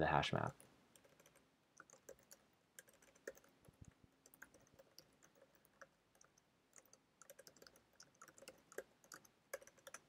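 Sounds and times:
keyboard keystrokes: 1.0s - 10.0s.

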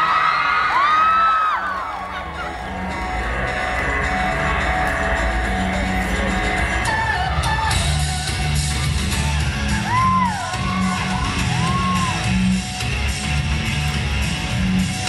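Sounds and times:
audience whooping and cheering: 0.0s - 12.7s
music with heavy bass: 0.0s - 15.0s.

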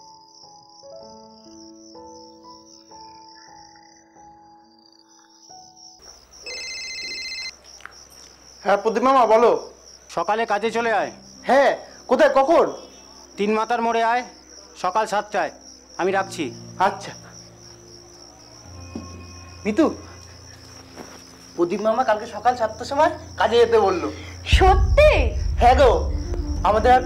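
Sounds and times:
background music: 0.0s - 7.5s, 8.8s - 27.0s
crickets chirring: 0.0s - 27.0s
mobile phone ringtone: 6.4s - 7.6s
low held music notes: 22.6s - 27.0s.

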